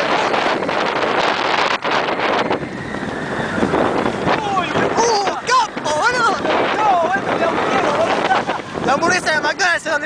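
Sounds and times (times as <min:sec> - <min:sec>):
roller coaster running on track: 0:00.0 - 0:10.0
wind rushing over microphone: 0:00.0 - 0:10.0.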